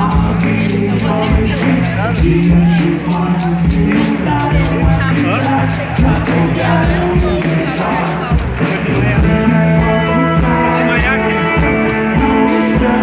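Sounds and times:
live rock band playing: 0:00.0 - 0:13.0
maracas shaking: 0:00.0 - 0:13.0
person singing: 0:00.0 - 0:13.0.

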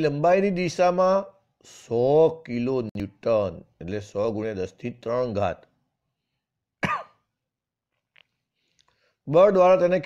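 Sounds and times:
person coughing: 0:06.8 - 0:07.3.

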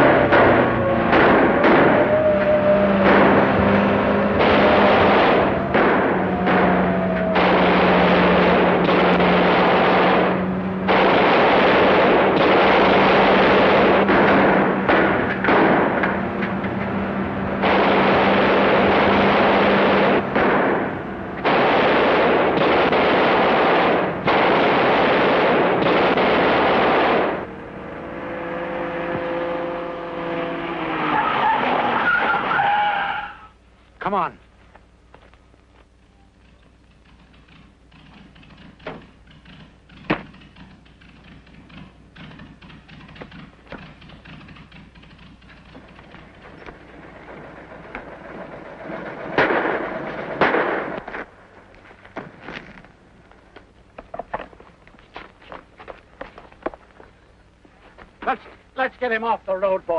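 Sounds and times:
vehicle engine and tyre noise: 0:00.0 - 0:59.9.

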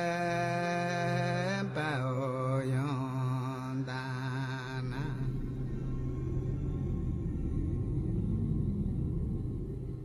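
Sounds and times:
person chanting long notes: 0:00.0 - 0:10.0
steady low drone: 0:00.0 - 0:10.0.

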